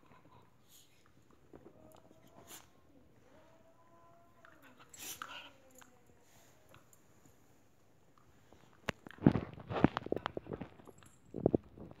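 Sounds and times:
dog chewing and mouthing: 8.1s - 12.0s.

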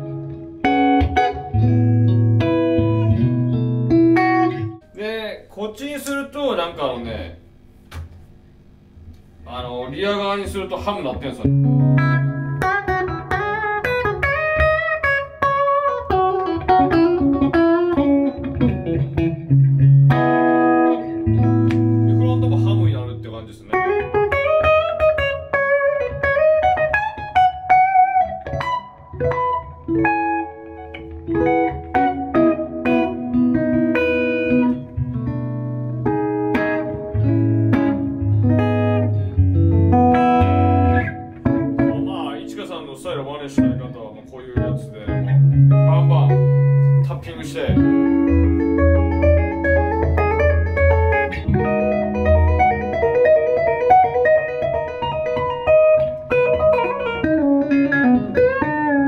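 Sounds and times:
electric guitar through an amp: 0.0s - 4.9s, 10.4s - 59.0s.

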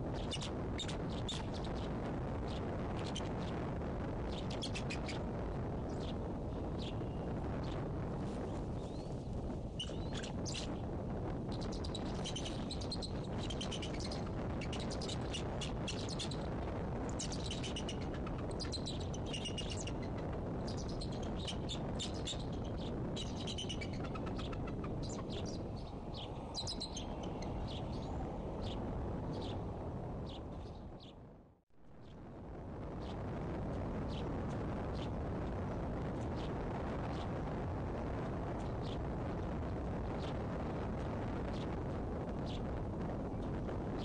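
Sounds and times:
bird chirping: 9.8s - 10.7s, 11.5s - 16.5s, 17.2s - 29.6s.

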